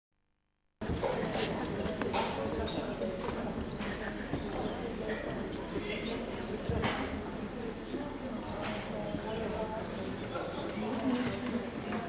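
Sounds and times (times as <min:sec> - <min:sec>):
audience chatter: 0:00.8 - 0:12.0.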